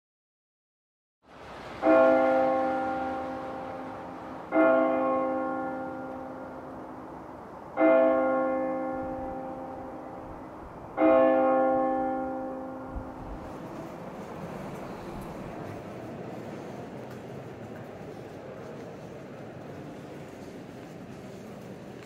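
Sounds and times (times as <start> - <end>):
large bell ringing: 1.8 - 7.2, 7.8 - 13.5.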